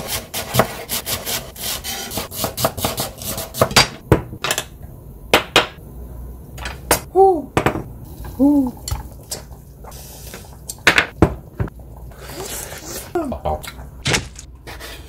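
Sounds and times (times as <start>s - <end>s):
knife chopping on cutting board: 0.1s - 4.0s
person exclaiming: 7.1s - 7.6s, 8.4s - 8.8s, 13.1s - 13.6s.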